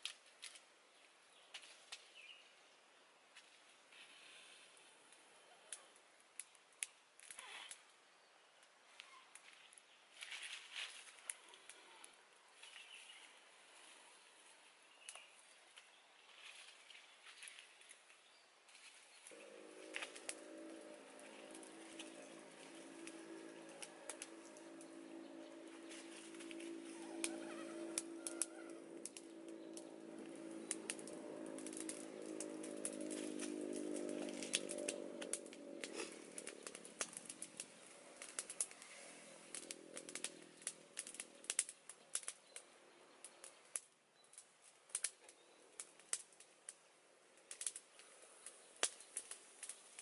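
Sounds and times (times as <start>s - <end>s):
wood fire crackling: 0.0s - 50.0s
leaves stirred in pan with stick: 18.7s - 42.6s
steady low hum: 19.3s - 41.5s.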